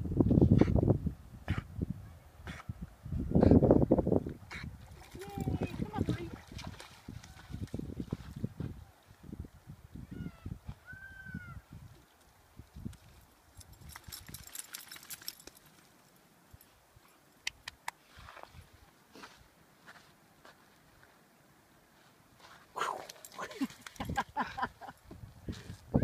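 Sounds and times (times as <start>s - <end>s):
dog shaking water off: 13.9s - 15.8s.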